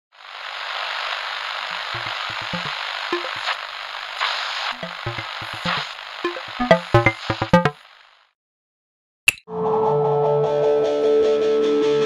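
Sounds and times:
static-like hiss: 0:00.2 - 0:08.3
short low synth blips: 0:02.0 - 0:03.5, 0:04.8 - 0:07.8.

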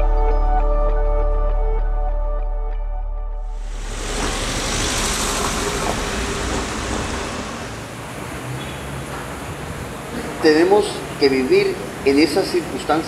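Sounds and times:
passing road traffic: 0:03.6 - 0:10.5.

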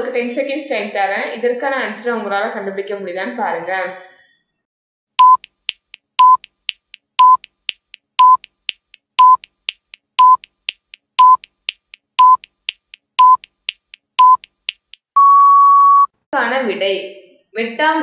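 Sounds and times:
short high beeps with click: 0:05.2 - 0:05.5
faint ticking: 0:05.2 - 0:15.2.

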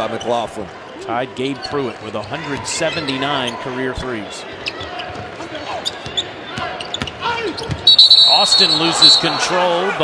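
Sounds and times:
referee's whistle: 0:07.8 - 0:09.5.

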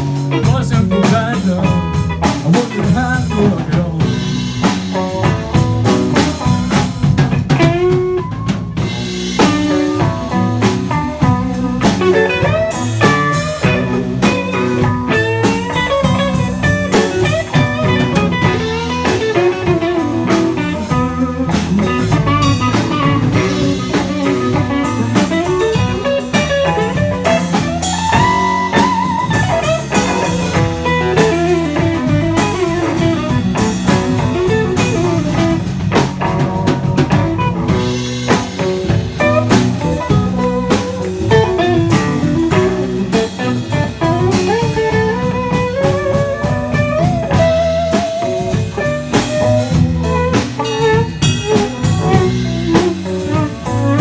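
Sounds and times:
blues band playing: 0:00.0 - 0:54.0
lead guitar bending notes: 0:00.0 - 0:54.0.

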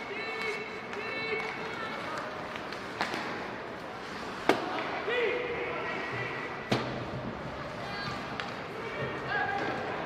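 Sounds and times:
skates on ice: 0:00.0 - 0:05.2.

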